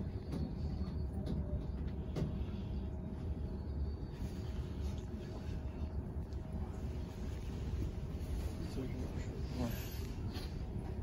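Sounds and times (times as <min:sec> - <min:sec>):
trolleybus low rumble: 0:00.0 - 0:11.0.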